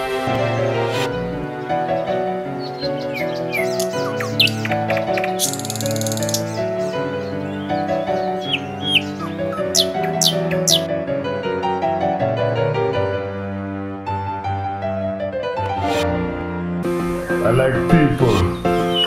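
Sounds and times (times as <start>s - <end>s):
music of sustained chords: 0.0s - 19.0s
birds chirping: 1.4s - 10.9s, 18.5s - 19.0s.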